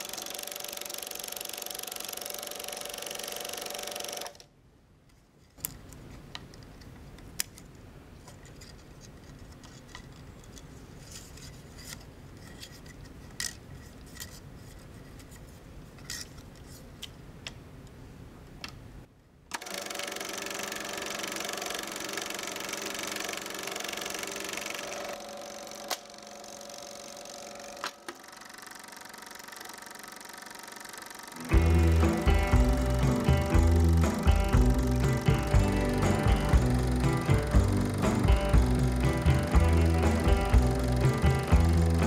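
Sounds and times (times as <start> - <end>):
film projector whirring: 0.0 - 4.5, 19.5 - 42.0
plastic reel clicking: 0.0 - 4.5, 19.5 - 42.0.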